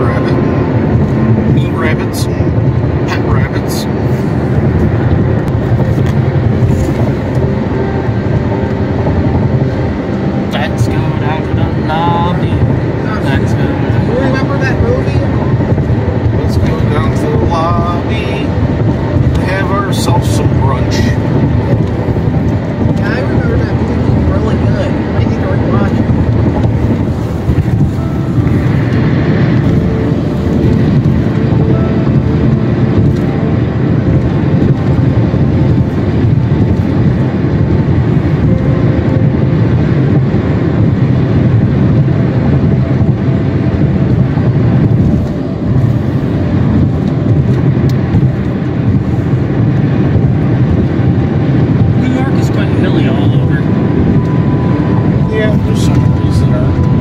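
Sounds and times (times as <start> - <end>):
car road noise from cabin: 0.0 - 57.0.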